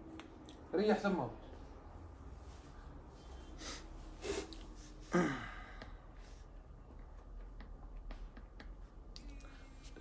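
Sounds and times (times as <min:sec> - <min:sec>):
man sighing: 0:05.0 - 0:06.0.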